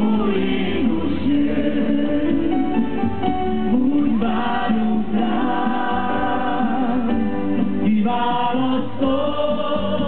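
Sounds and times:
people singing held notes: 0.0 - 10.0.

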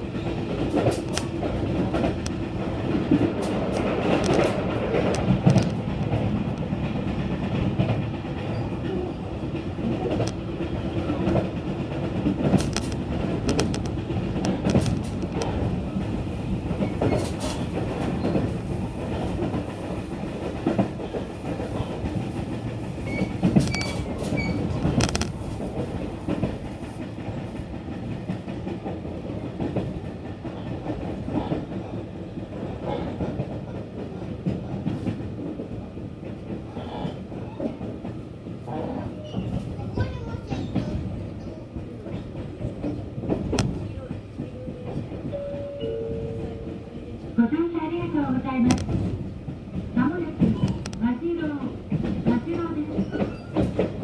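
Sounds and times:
rail joint clicks: 0.0 - 54.0
train wheels rumbling on rail: 0.0 - 54.0.

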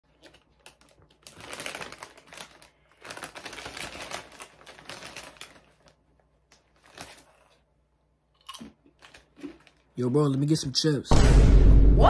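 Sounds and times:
chip bag crinkling: 0.1 - 7.6, 8.4 - 10.0.

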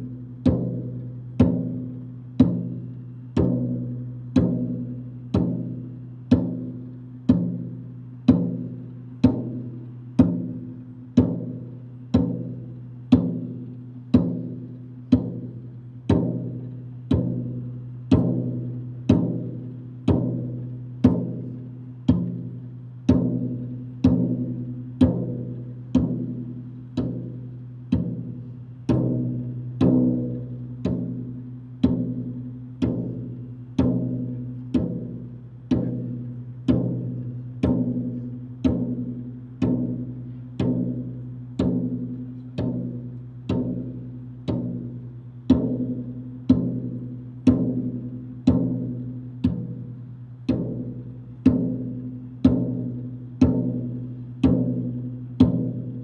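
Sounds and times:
bass drum struck with mallet: 0.0 - 56.0.

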